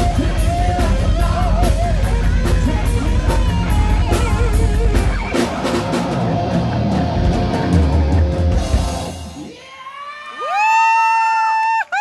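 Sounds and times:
rock band music: 0.0 - 9.6
person whooping: 9.4 - 12.0.

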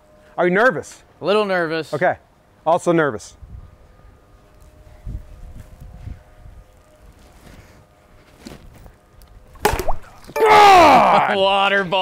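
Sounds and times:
faint outdoor rumble: 0.0 - 10.3
plastic bat hitting ball: 9.6 - 10.1.

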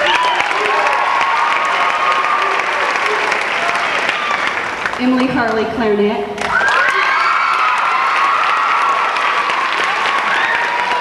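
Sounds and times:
high-pitched cheering: 0.0 - 4.8, 6.4 - 11.0
audience applauding: 0.0 - 5.6, 6.4 - 11.0.

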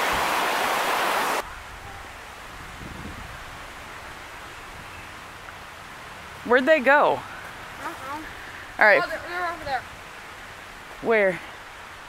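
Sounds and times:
stream rushing over rapids: 0.0 - 12.0
wind rumble on microphone: 1.4 - 5.5.

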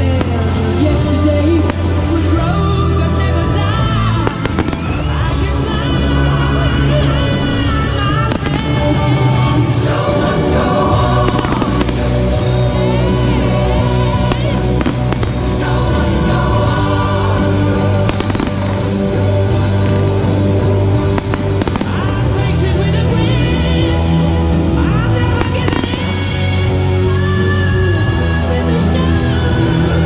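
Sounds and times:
fireworks bursting with sharp bangs: 0.0 - 2.6, 3.2 - 22.8, 25.4 - 26.4
music with low bass line: 0.0 - 30.0.

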